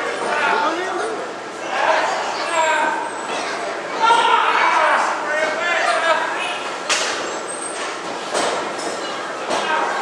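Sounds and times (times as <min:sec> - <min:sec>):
people shouting: 0:04.0 - 0:06.5.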